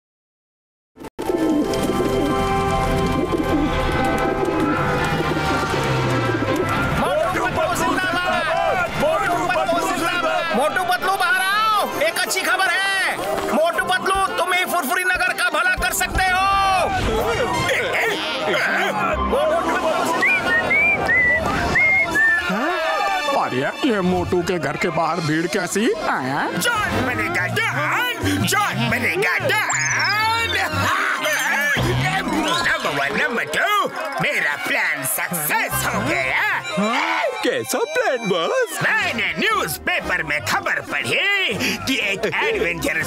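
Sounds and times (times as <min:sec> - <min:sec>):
cartoon music with held notes: 0:29.5 - 0:31.8, 0:35.7 - 0:39.2
high calls rising and falling: 0:29.6 - 0:31.8.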